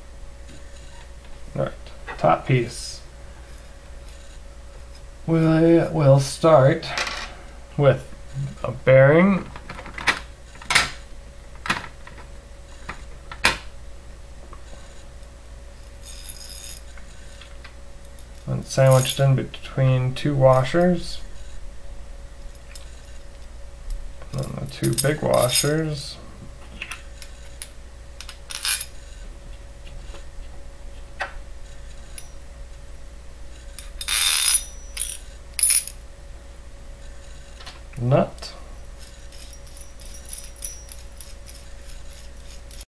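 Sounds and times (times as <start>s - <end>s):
faint steady hum: 0.0s - 42.9s.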